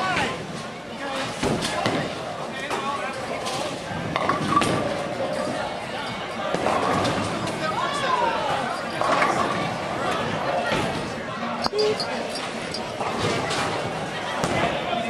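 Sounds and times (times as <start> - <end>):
chatter of many voices: 0.0 - 15.0.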